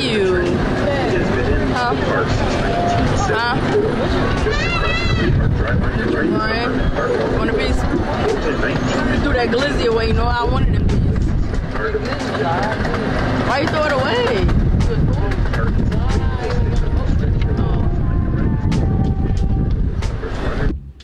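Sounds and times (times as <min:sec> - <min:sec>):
riders' voices: 0:00.0 - 0:20.7
train rumbling: 0:00.0 - 0:21.0.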